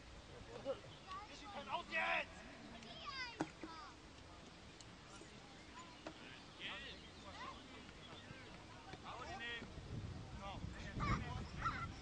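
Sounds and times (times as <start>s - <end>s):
people shouting and calling: 1.3s - 3.5s.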